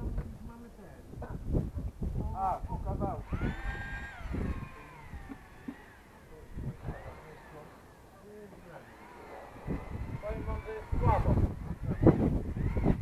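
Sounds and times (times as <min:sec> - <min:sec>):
distant people talking: 0:02.6 - 0:12.8.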